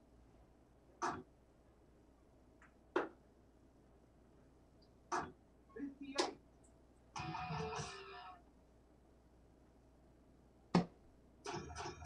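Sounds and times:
dart striking board: 0:10.8 - 0:11.0.

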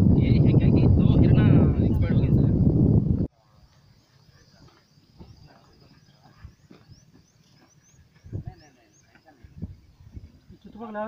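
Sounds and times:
distant people talking: 0:03.4 - 0:11.0.

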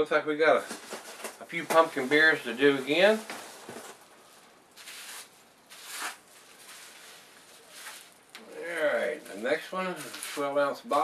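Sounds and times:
packing wrap rustling: 0:00.6 - 0:10.5.

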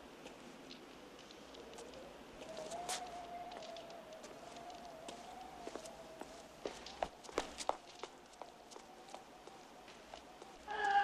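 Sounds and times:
footsteps on pavement: 0:01.2 - 0:11.0.

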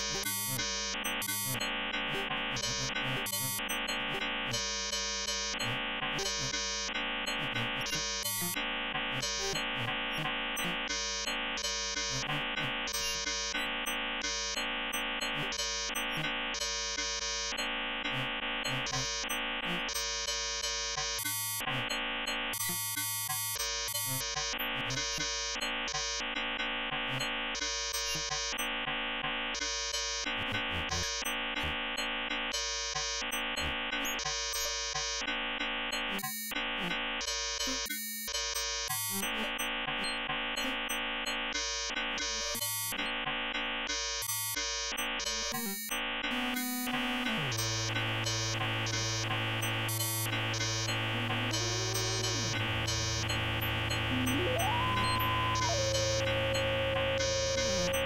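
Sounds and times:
synthesized electronic drone: 0:46.3 - 0:58.0
bright buzzing upper tones: 0:47.4 - 0:58.0.

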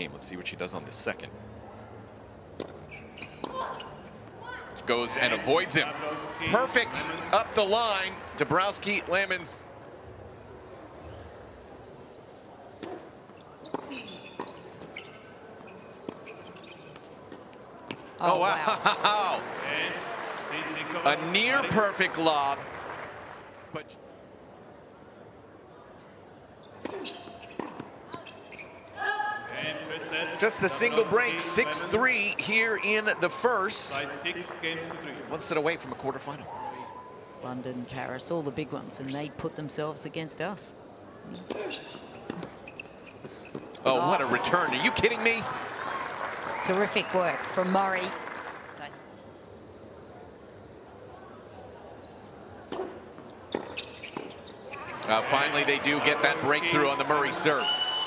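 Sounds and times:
sneakers squeaking on court: 0:02.6 - 0:04.2, 0:12.8 - 0:18.1, 0:26.6 - 0:29.0, 0:41.3 - 0:43.8, 0:52.0 - 0:55.8.

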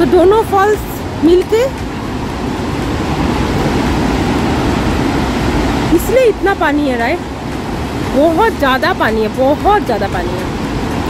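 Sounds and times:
waterfall rushing: 0:00.0 - 0:11.0.

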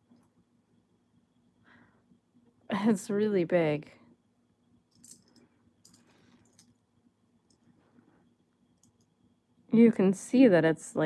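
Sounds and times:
faint clicks and rustles: 0:04.8 - 0:09.2.

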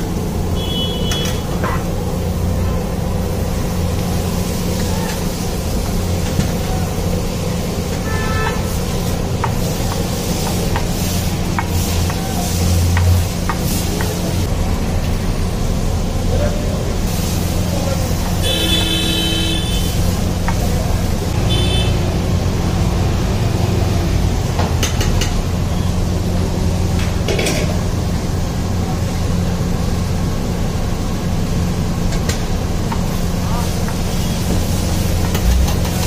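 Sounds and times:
traffic rumble: 0:00.0 - 0:36.0
vehicle horns honking: 0:00.6 - 0:01.9, 0:08.0 - 0:08.8, 0:18.4 - 0:20.0, 0:21.4 - 0:22.2.

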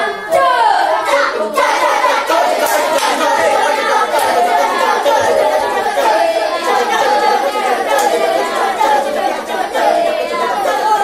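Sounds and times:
children chanting together: 0:00.0 - 0:11.0.

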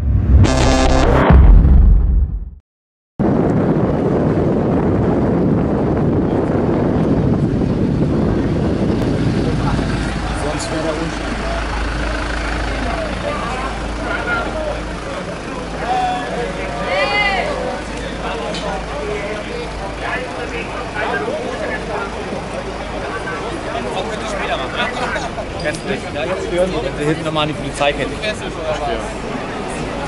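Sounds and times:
idling engines rumbling: 0:04.4 - 0:30.0
many voices talking: 0:08.1 - 0:30.0.

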